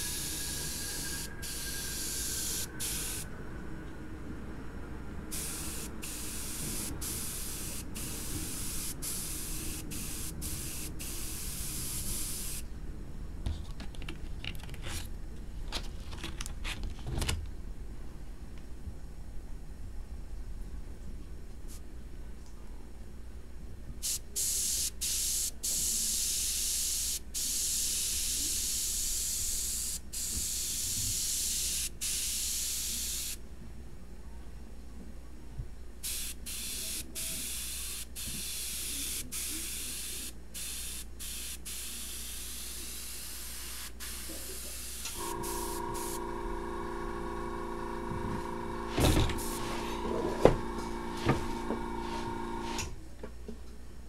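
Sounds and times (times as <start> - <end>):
airbrush spraying hiss: 0.0 - 3.3, 5.3 - 12.7, 24.0 - 33.4, 36.0 - 46.2, 49.3 - 50.0
steady multi-pitched hum: 0.0 - 13.9, 36.2 - 53.0.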